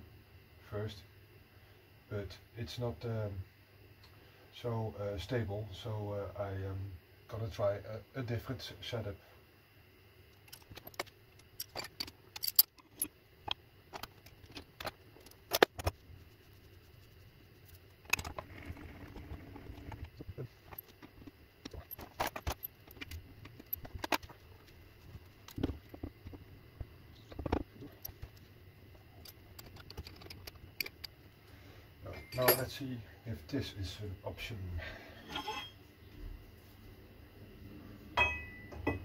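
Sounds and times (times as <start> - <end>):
metal clinks of wrench and parts: 11.6 - 13.1, 32.1 - 32.8, 35.2 - 35.8.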